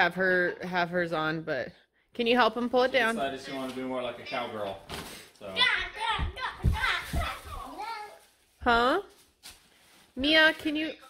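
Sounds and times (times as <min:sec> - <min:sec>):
children chattering and calling: 0:05.6 - 0:08.2.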